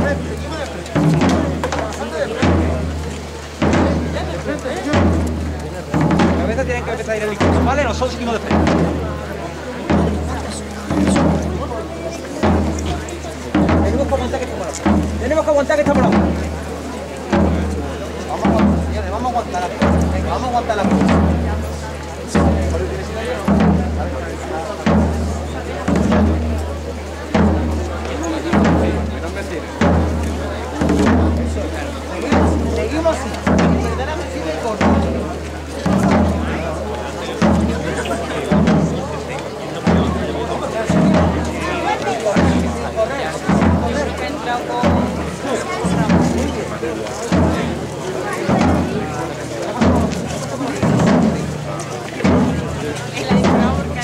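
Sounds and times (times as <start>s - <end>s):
processional drums marching: 0.0s - 54.0s.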